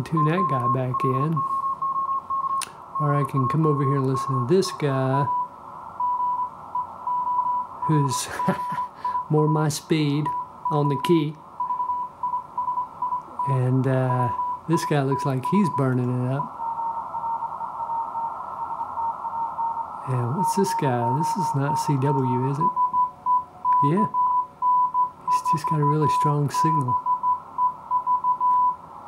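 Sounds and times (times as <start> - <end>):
morse code tone: 0.0 - 28.8
receiver hiss: 0.0 - 29.0.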